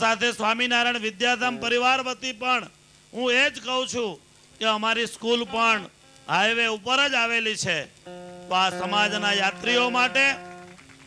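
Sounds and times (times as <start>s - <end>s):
man speaking into a microphone: 0.0s - 10.4s
low mains hum: 0.0s - 11.0s.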